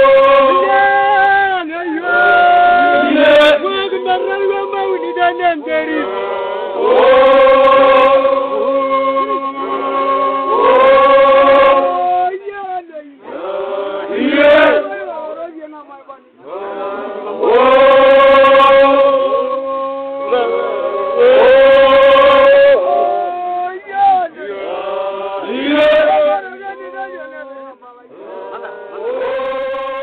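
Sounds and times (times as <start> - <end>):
group singing together: 0.0 - 12.6, 13.2 - 15.6, 16.4 - 30.0.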